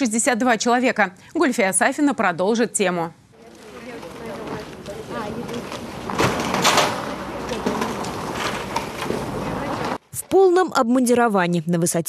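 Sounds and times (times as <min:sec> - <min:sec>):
snow sliding off a roof: 0:03.4 - 0:10.0.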